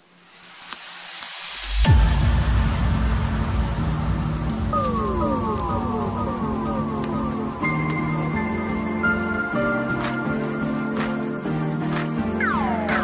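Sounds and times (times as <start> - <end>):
electronic music: 1.5 - 13.0
steady low bass: 1.7 - 9.7.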